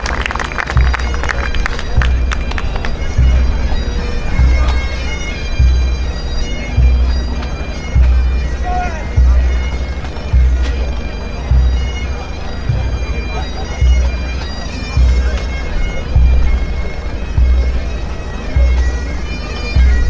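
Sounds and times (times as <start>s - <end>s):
bagpipes with drones: 0.0s - 20.0s
bass drum strokes: 0.8s - 20.0s.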